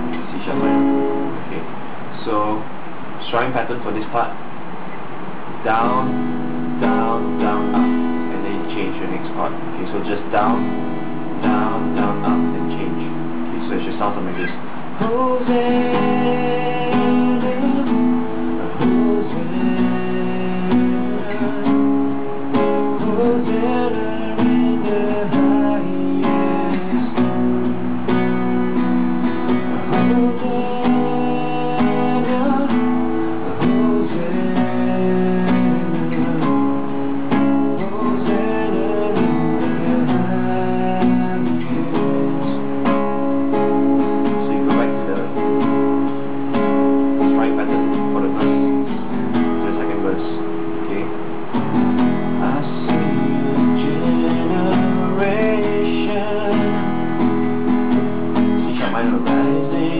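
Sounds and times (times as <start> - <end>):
acoustic guitar strumming: 0.0 - 59.9
man singing: 6.8 - 10.8, 11.4 - 28.1, 29.6 - 43.2, 52.3 - 57.7, 58.4 - 59.9.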